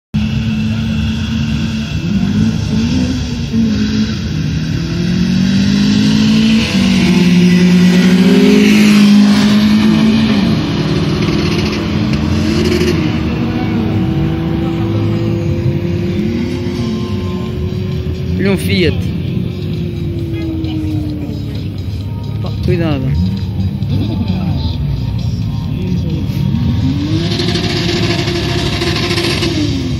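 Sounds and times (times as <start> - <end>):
car engine accelerating hard: 0.2 - 29.9.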